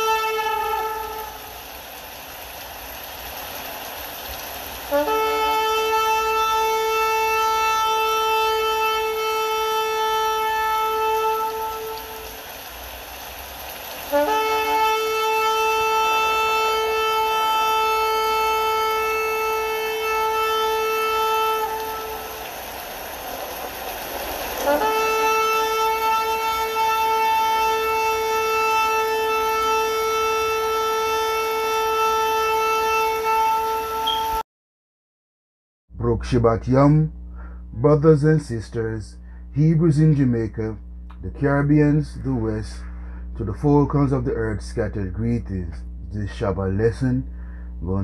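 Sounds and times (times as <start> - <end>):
shofar blasts: 0.0 - 1.7, 4.9 - 12.5, 14.1 - 22.8, 24.6 - 34.4.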